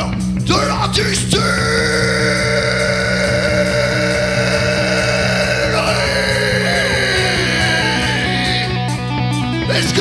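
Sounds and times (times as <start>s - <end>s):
drum beats: 0.0s - 10.0s
hard rock band playing live: 0.0s - 10.0s.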